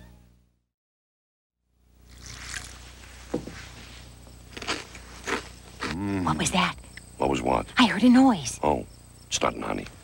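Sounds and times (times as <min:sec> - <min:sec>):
faint steady hum: 0:00.0 - 0:00.7, 0:01.6 - 0:10.0
cereal flakes crunching: 0:02.1 - 0:02.8.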